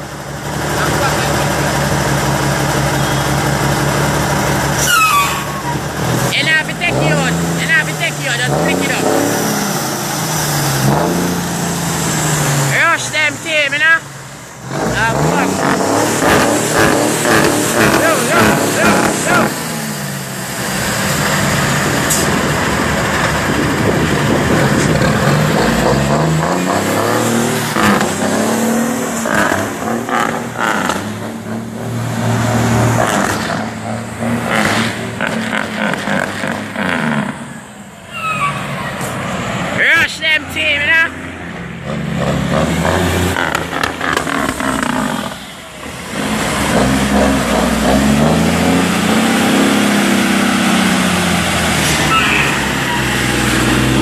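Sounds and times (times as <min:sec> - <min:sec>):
diesel truck engine revving: 0:00.0 - 0:54.0.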